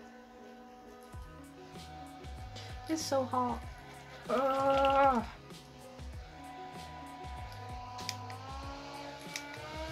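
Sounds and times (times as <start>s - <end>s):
background music with bass: 0.0s - 9.9s
handheld fan motor whine: 0.0s - 9.9s.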